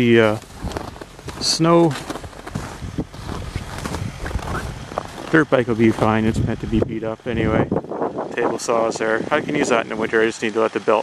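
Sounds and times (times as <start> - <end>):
wind noise on microphone: 0.0 - 1.4, 2.1 - 10.2
footsteps crunching in snow: 0.0 - 6.7.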